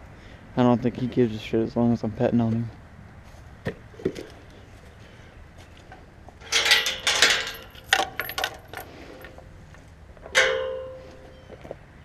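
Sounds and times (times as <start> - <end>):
metal gate clang ringing: 6.4 - 8.9, 10.2 - 11.4
metal gate clanking and rattling: 6.4 - 9.4, 10.2 - 11.2.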